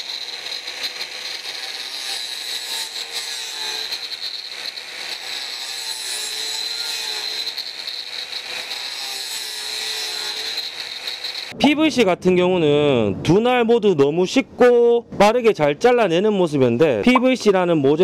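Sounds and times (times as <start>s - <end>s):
angle grinder cutting plastic pipe: 0.0s - 11.6s.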